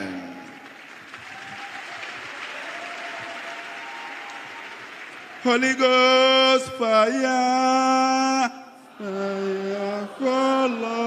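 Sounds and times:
congregation applauding: 0.0s - 11.0s.

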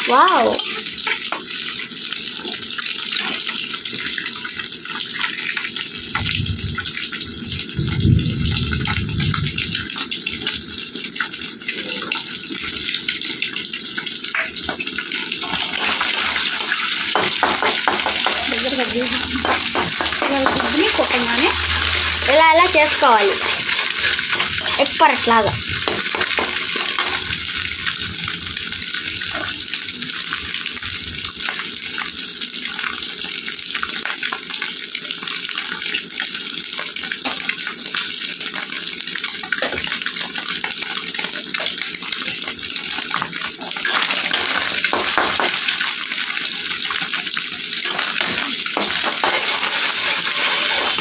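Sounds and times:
eggs sizzling in a pan: 0.0s - 7.9s, 8.5s - 51.0s
spatula scraping a pan: 15.4s - 27.4s, 43.8s - 45.8s, 47.8s - 51.0s.

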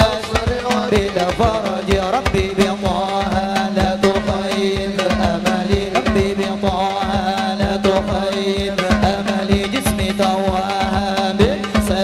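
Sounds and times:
drums beating quick rhythm: 0.0s - 12.0s
man singing into a microphone: 0.0s - 12.0s.

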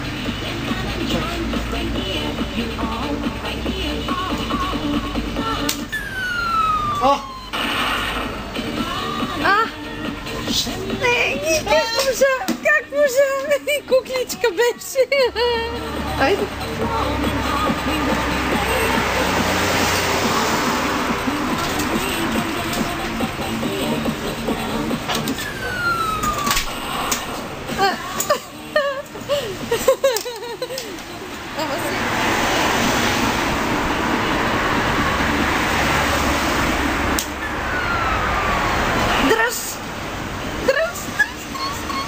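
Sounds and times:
claw machine electronic tune: 5.9s - 8.6s, 15.7s - 27.1s
falling electronic tone: 5.9s - 8.6s, 25.2s - 27.6s, 32.9s - 39.4s.

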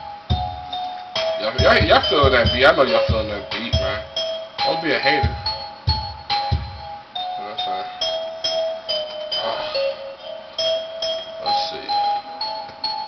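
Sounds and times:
heavy kick drums: 0.0s - 7.0s
bell-like keyboard melody: 0.0s - 13.0s
hip-hop beat: 0.0s - 13.0s.

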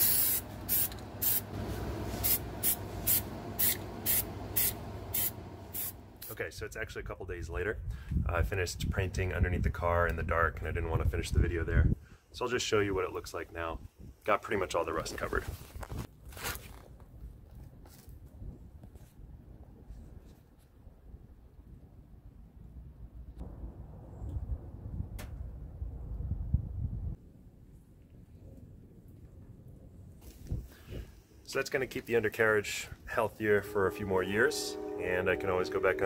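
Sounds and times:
aerosol can spraying: 0.0s - 6.0s
low steady hum: 0.0s - 6.5s, 32.4s - 36.0s
faint low movement rumble: 0.4s - 11.9s, 31.5s - 36.0s.

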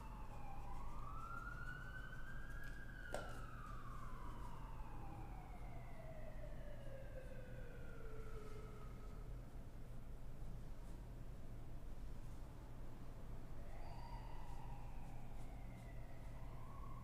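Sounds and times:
siren wailing: 0.0s - 9.4s, 13.6s - 17.0s.

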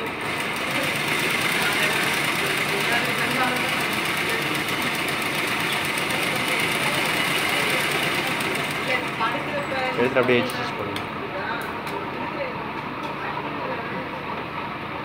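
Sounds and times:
sewing machine stitching: 0.0s - 10.6s.

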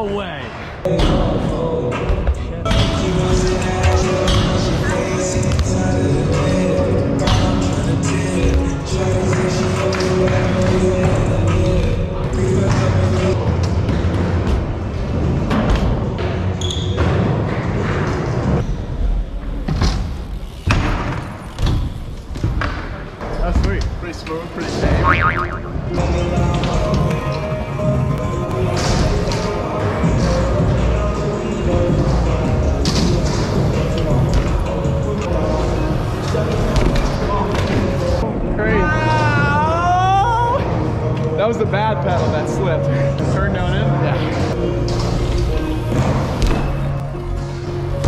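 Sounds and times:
bike tyres thudding on wooden ramps: 13.7s - 24.0s, 44.9s - 48.0s.

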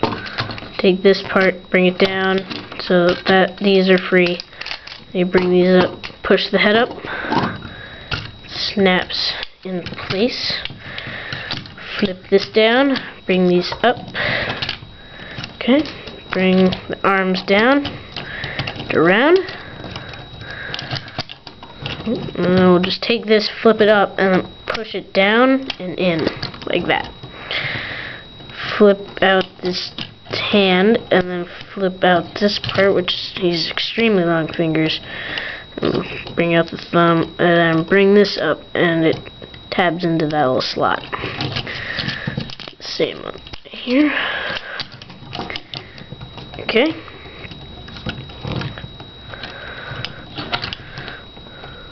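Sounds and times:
plastic toy parts clicking: 1.4s - 5.9s.

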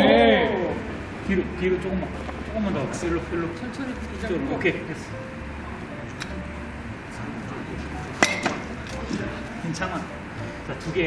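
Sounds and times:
background chatter: 0.0s - 11.0s
low steady hum: 0.0s - 11.0s.

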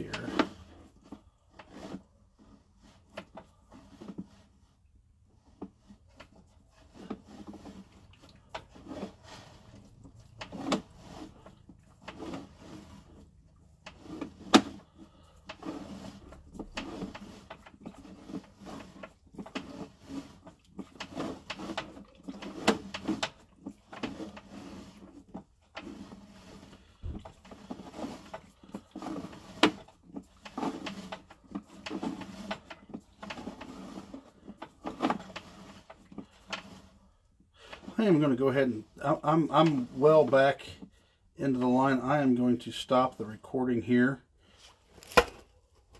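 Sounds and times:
cable rubbing and scraping: 0.0s - 45.4s.

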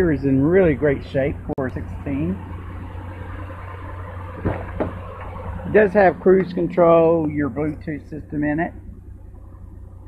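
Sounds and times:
pickup engine idling hum: 0.0s - 10.0s
short knocks: 4.4s - 5.3s.

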